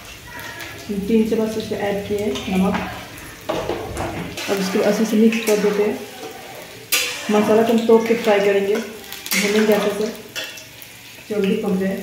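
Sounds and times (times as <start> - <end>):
low sizzle: 0.0 - 12.0
ladle stirring and scraping in pan: 2.1 - 11.3.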